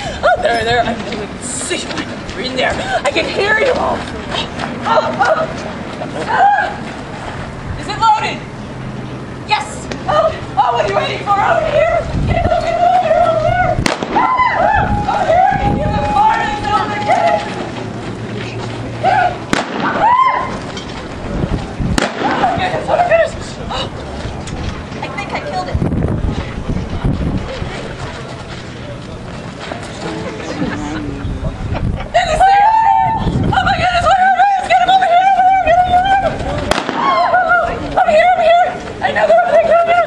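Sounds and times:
faint indistinct voices: 0.0s - 40.0s
wind buffeting microphone: 0.0s - 40.0s.

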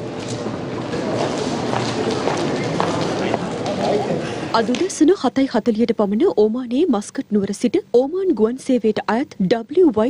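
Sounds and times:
chatter of many people: 0.0s - 5.6s.

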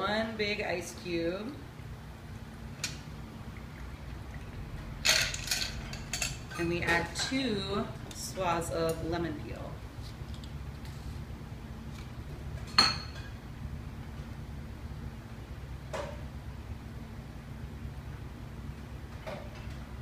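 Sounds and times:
low hum: 1.3s - 19.0s.

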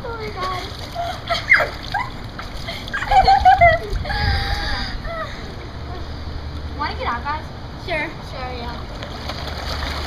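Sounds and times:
pool water splashing: 0.0s - 4.0s, 8.4s - 10.0s
girls squealing: 1.0s - 2.3s.

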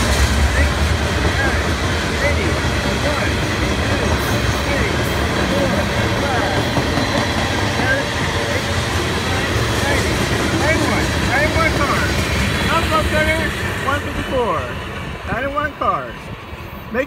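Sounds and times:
freight train wheels clattering on rails: 0.0s - 15.5s.

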